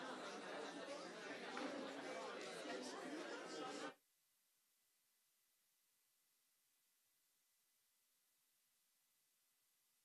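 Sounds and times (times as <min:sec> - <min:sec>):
crowd chatter: 0:00.0 - 0:04.0.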